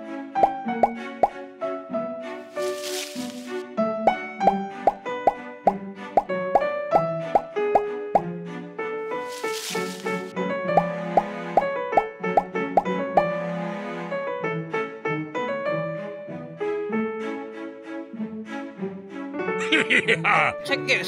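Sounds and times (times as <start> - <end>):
playful music with plopping notes: 0.4 - 1.4, 4.0 - 8.4, 10.6 - 13.4.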